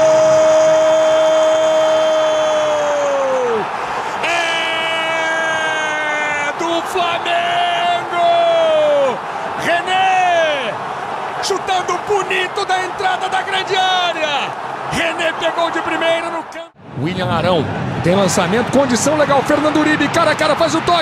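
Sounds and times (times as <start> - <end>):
stadium crowd noise: 0.0 - 21.0.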